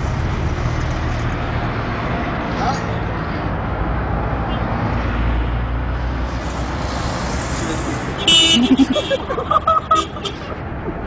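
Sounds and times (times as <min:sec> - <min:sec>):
cars passing: 0:00.0 - 0:11.0.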